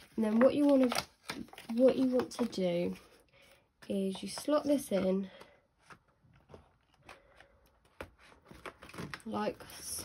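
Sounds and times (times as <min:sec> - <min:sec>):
plastic envelope rustling: 0:00.0 - 0:03.2, 0:03.9 - 0:10.0.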